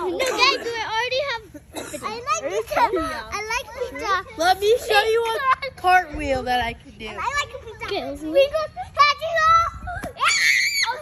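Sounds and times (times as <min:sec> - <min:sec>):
children's high-pitched voices: 0:00.0 - 0:11.0
child shrieking: 0:10.2 - 0:11.0.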